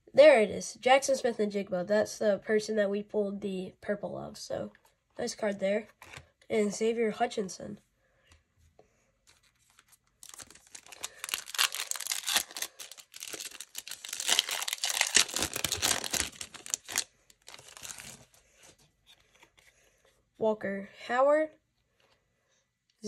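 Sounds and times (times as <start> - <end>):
wrapper tearing and crinkling: 9.3 - 18.4.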